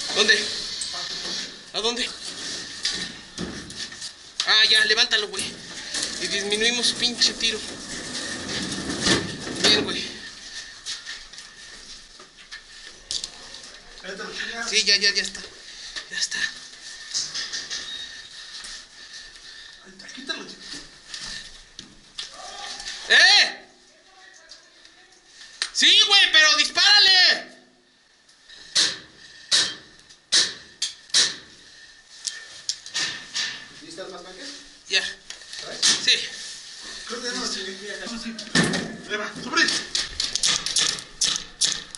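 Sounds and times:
faint shouting: 0:22.3 - 0:23.7.

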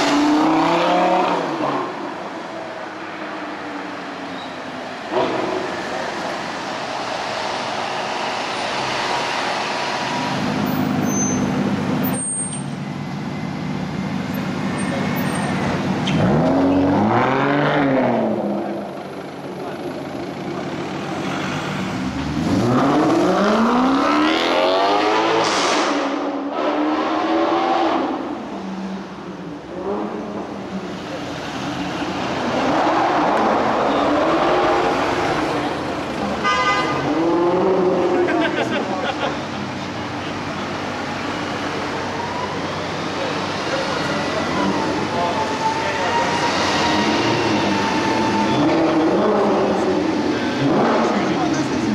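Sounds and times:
car engines revving: 0:00.0 - 0:51.9
traffic noise: 0:00.0 - 0:51.9.

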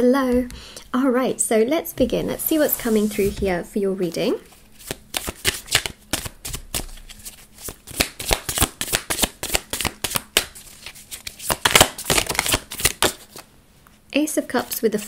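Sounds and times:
cards being shuffled: 0:04.6 - 0:13.5.

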